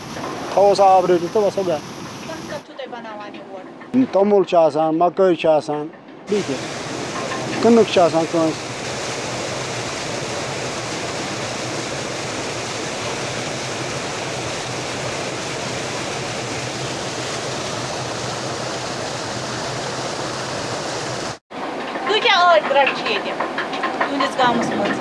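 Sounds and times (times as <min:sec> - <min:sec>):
water jet splashing on wheel: 0:00.0 - 0:02.6, 0:06.3 - 0:25.0.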